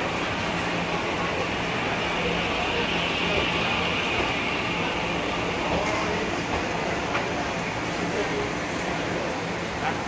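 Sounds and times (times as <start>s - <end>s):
train cars rolling past: 0.0s - 9.4s.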